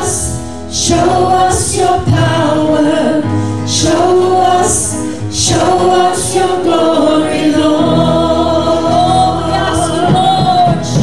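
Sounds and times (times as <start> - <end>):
acoustic guitar: 0.0 - 11.0
bass guitar: 0.0 - 11.0
stage piano: 0.0 - 11.0
women singing: 0.0 - 11.0.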